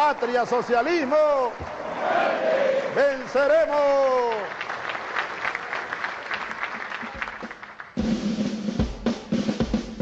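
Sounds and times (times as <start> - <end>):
audience applauding: 0.0 - 8.1.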